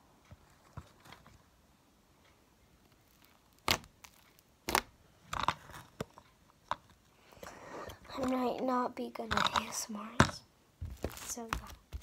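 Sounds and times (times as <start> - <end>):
slime popping and crackling: 2.9 - 5.6.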